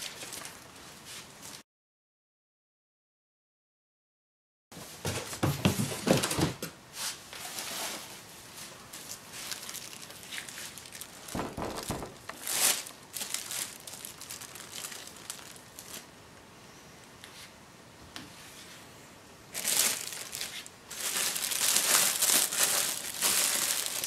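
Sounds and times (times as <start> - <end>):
plastic bag crinkling: 0.0 - 0.8, 8.9 - 16.1, 19.5 - 24.0
dull bumps of a board: 11.4 - 12.3.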